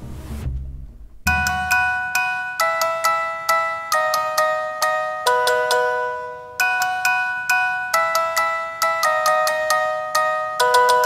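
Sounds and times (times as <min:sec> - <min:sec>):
chiming bell-like notes: 0:01.3 - 0:11.0.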